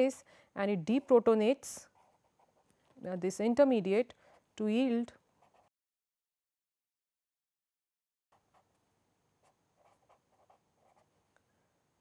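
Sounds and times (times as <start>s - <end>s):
pen scratching on paper: 1.9s - 2.7s, 5.4s - 5.7s, 9.4s - 11.1s.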